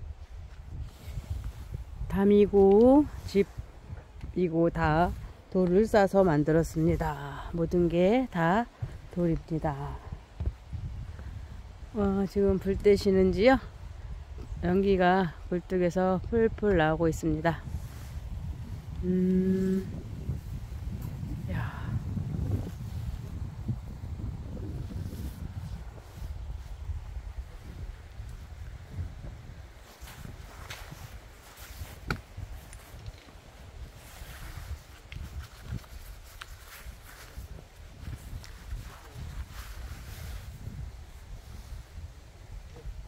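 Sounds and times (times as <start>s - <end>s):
wind buffeting microphone: 0.0s - 43.0s
soft footsteps: 17.6s - 40.8s.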